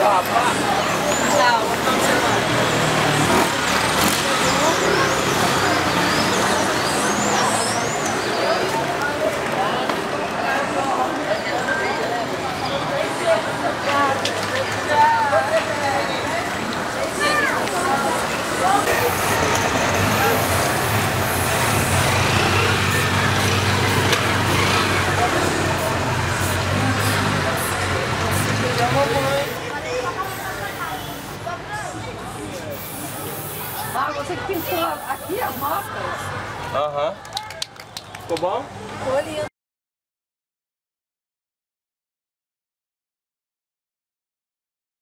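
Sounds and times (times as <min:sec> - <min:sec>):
indistinct voices talking: 0:00.0 - 0:39.5
traffic rumble: 0:00.0 - 0:39.5
vehicle engine hum: 0:17.7 - 0:31.3.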